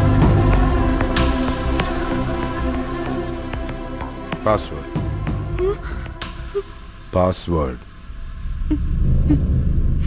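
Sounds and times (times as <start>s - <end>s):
sustained film score notes: 0.0s - 10.0s.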